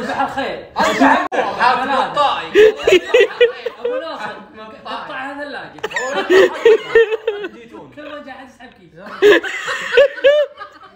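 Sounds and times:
men laughing: 0.8 - 1.8, 2.5 - 4.4, 5.8 - 7.6, 9.1 - 10.9.

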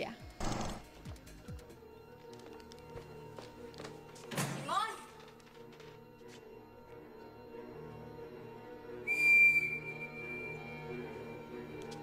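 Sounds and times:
shrill whistle tone: 9.0 - 10.9.

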